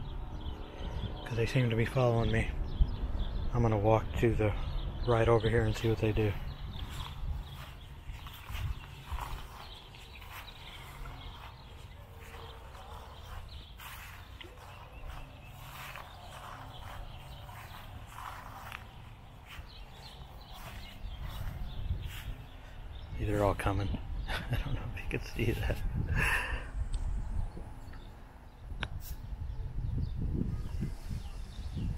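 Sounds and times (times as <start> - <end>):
wind rumble: 0.0 - 31.9
footsteps crunching on shore: 6.2 - 22.8.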